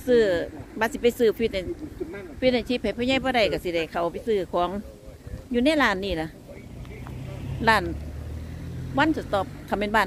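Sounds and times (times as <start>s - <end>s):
vehicle engine drone: 0.0s - 10.0s.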